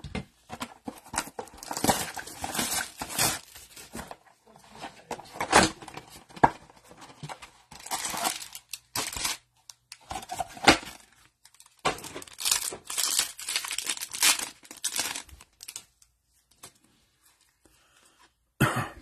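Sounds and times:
foil wrappers tearing and crinkling: 1.4 - 4.0, 7.7 - 9.5, 10.1 - 16.0.

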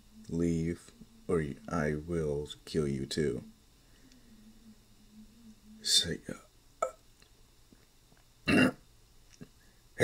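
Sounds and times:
man clearing his throat: 8.5 - 8.8.

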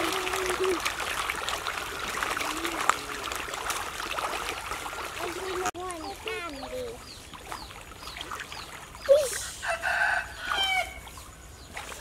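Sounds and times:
rooster crowing: 9.6 - 11.0.

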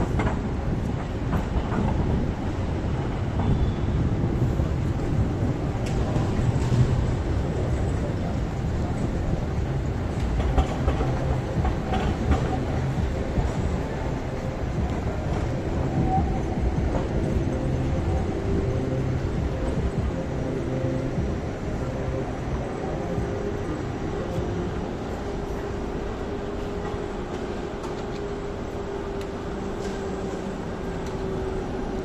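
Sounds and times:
tram wheels rumbling on rails: 0.0 - 32.0.

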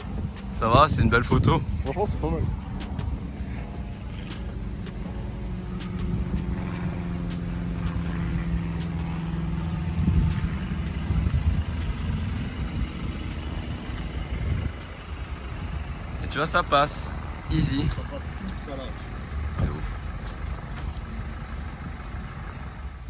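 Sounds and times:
engine running at low revs: 0.0 - 23.0.

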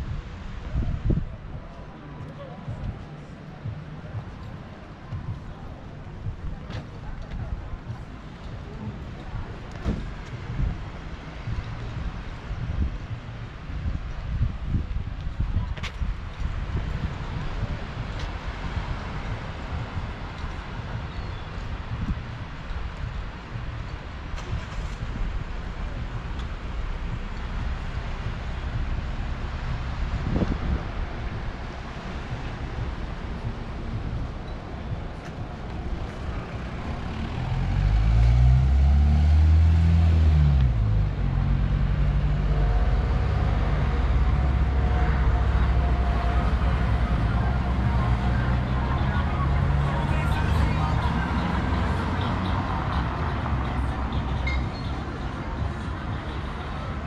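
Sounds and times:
people talking: 0.0 - 13.4, 40.6 - 57.0
wind rumbling on microphone: 0.0 - 57.0.

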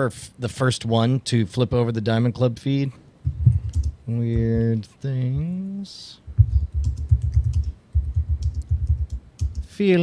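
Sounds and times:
fast typing on keyboard: 3.4 - 4.7, 6.4 - 9.7.

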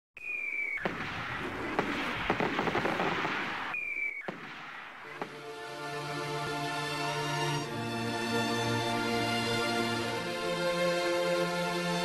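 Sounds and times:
firework crackling: 0.2 - 5.5
firework whistle: 0.2 - 5.5
firework bang: 0.8 - 5.4.

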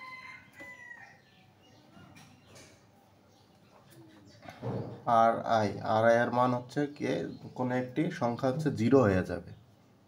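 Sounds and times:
faint rooster crow: 0.0 - 1.5.

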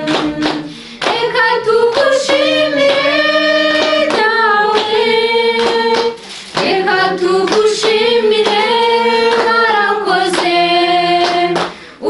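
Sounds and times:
hand-clapping: 0.0 - 12.0
voices singing together: 0.0 - 12.0.

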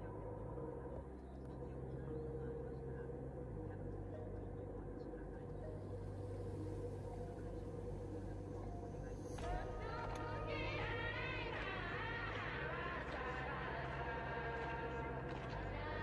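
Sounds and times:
airliner cabin drone: 0.0 - 16.0.

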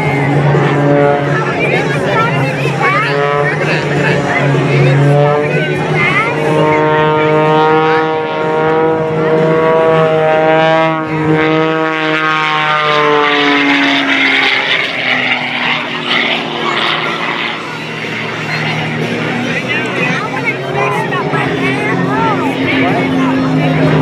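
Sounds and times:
propeller plane engine at power: 0.0 - 24.0.

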